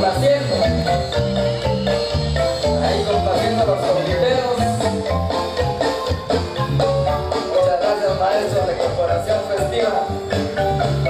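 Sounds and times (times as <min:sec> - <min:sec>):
marimba notes: 0:00.0 - 0:11.0
pulsing bass: 0:00.0 - 0:11.0.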